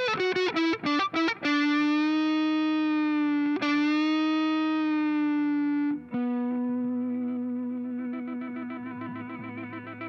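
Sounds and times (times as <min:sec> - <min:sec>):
electric guitar through amplifier: 0:00.0 - 0:10.0.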